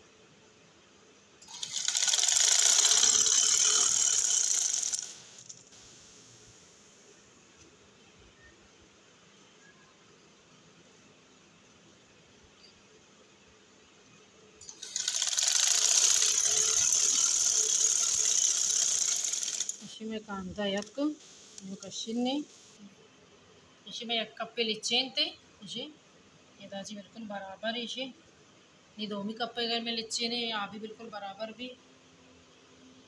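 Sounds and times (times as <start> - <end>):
sewing machine clattering: 1.5 - 5.7, 14.7 - 19.9.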